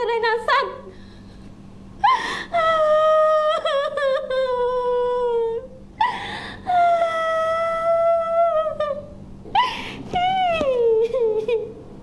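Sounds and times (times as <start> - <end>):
woman crying aloud: 2.0 - 11.7.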